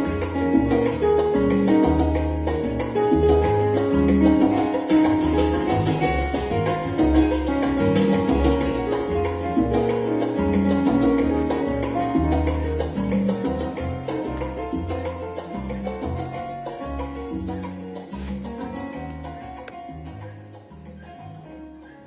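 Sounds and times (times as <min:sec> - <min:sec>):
fast percussion beat: 0:00.0 - 0:21.2
electronic keyboard music: 0:00.0 - 0:22.0.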